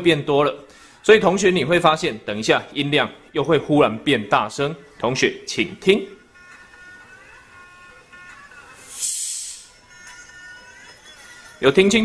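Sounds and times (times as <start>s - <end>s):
faint music from phone in jar: 0.0s - 12.0s
air hissing into jar: 8.8s - 9.8s.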